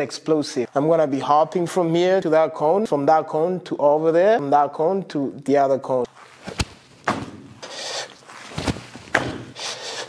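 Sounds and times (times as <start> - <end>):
landing thuds on turf: 6.5 - 7.5.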